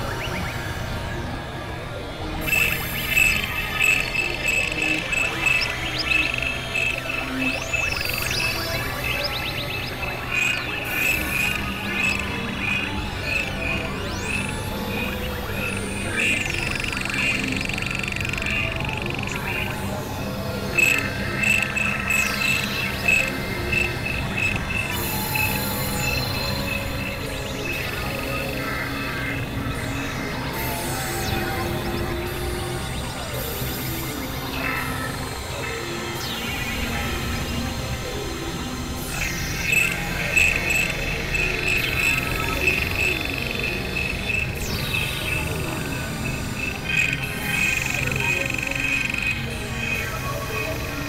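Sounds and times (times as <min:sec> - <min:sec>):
low steady drones: 0:00.0 - 0:51.0.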